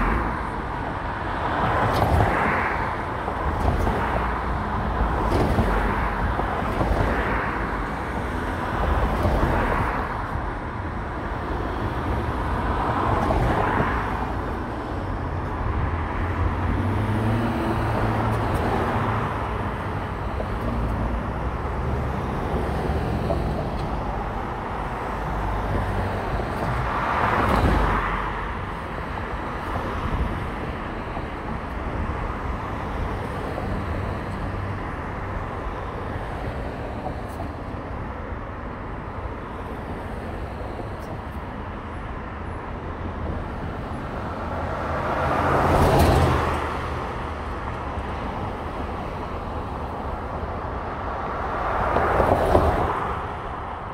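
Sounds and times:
car engine and road rumble: 0.0s - 53.9s
surrounding traffic noise: 0.0s - 53.9s.

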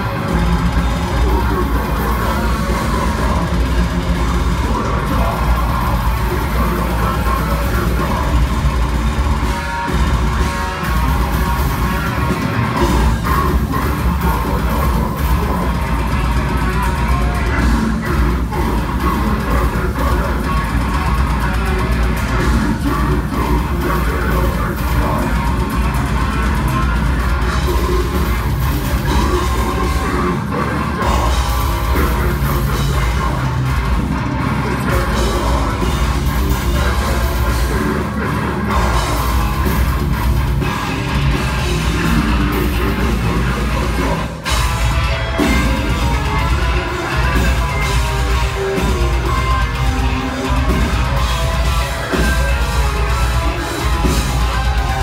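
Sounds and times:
distorted guitars: 0.0s - 55.0s
drum kit: 0.0s - 55.0s.

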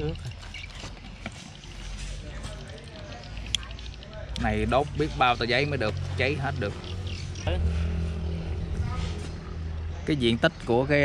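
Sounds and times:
faint voices: 0.0s - 11.0s
engine running drone: 3.2s - 11.0s.

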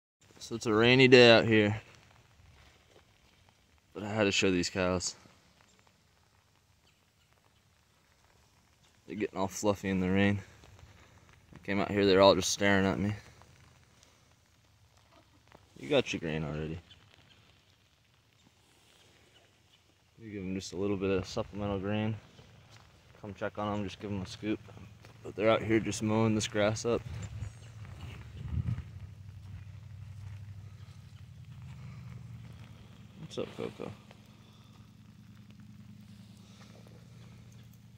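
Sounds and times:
hooves stepping on wet grass: 0.2s - 37.9s
steady low rumble: 20.1s - 37.9s
faint ticks: 26.0s - 37.9s.

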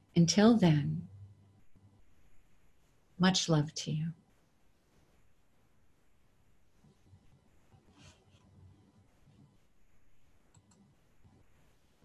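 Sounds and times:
faint clicks: 10.5s - 11.4s.

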